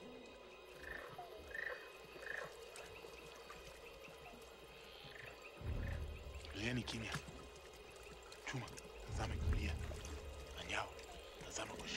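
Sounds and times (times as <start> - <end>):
quiet film score music: 0.0 - 11.9
night animal calls: 0.6 - 6.6
deep rumble: 5.6 - 6.9, 9.0 - 10.7.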